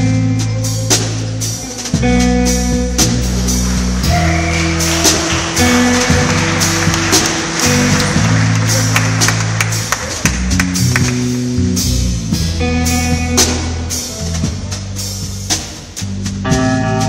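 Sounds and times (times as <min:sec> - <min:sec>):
electric bass low notes: 0:00.0 - 0:17.0
cymbals: 0:00.6 - 0:17.0.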